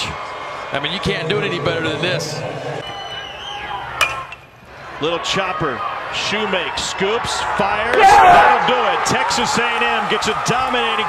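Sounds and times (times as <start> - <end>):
metal bat ping: 4.0 - 4.6.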